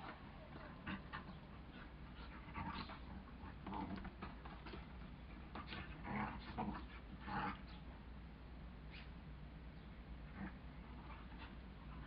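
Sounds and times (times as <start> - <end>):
dogs play-fighting vocalizing: 0.0 - 7.8.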